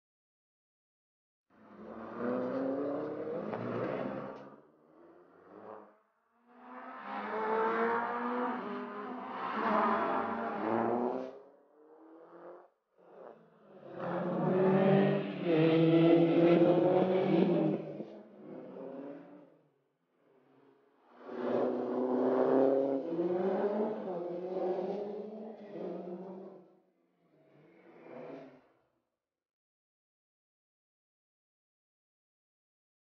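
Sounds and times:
rally car engines revving: 1.6 - 19.5, 21.1 - 26.7, 27.5 - 28.7.

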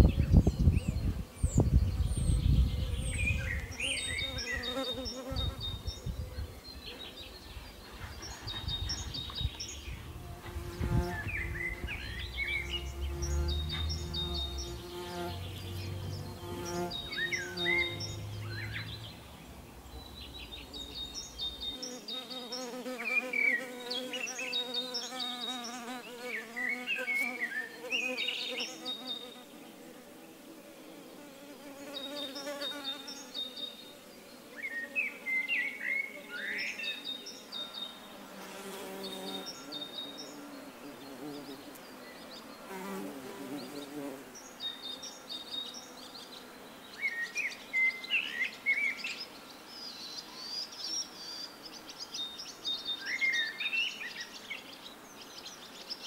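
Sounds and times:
small birds chirping: 0.0 - 56.0
bumblebee buzzing in flight: 1.0 - 6.2, 9.0 - 35.4, 37.9 - 42.0, 42.6 - 44.3.

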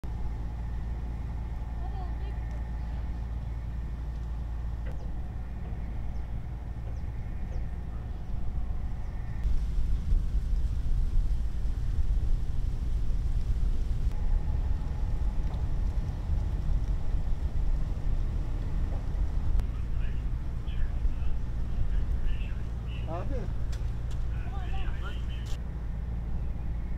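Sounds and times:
low outdoor rumble: 0.0 - 26.9.

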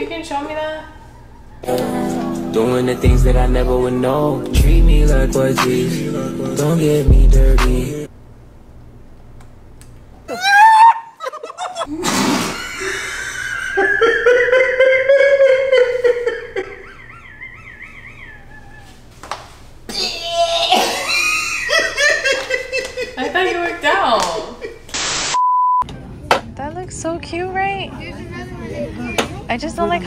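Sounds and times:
man laughing: 10.3 - 19.1, 19.9 - 24.9
woman laughing: 11.1 - 12.0, 12.6 - 19.1, 20.0 - 24.9.

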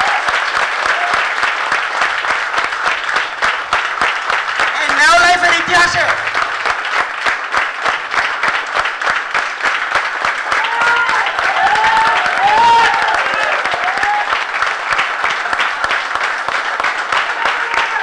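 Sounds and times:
audience applauding: 0.0 - 18.0.

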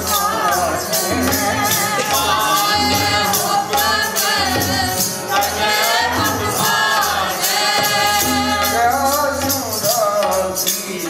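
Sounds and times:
steady percussion: 0.0 - 11.0.

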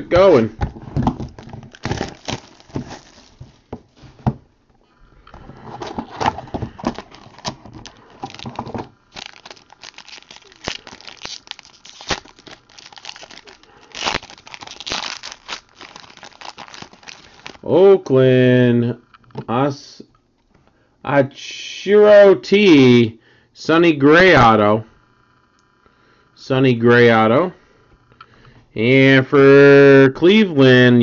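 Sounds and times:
foil wrapper crinkling and tearing: 1.4 - 3.5, 6.8 - 17.6.

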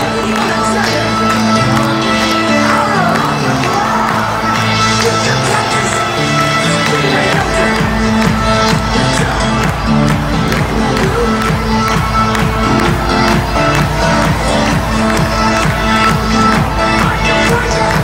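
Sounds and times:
crowd noise: 0.0 - 18.0
heavy bass beat: 0.0 - 18.0
loud music over loudspeakers: 0.0 - 18.0.

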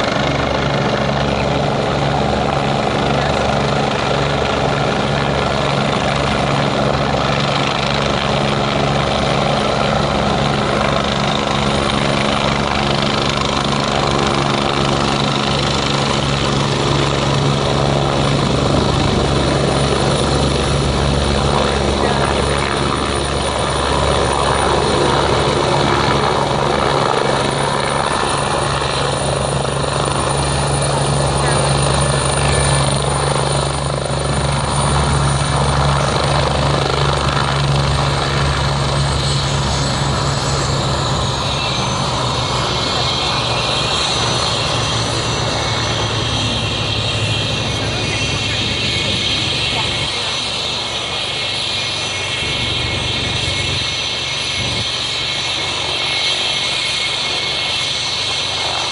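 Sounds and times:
helicopter rotor and engine: 0.0 - 58.9.

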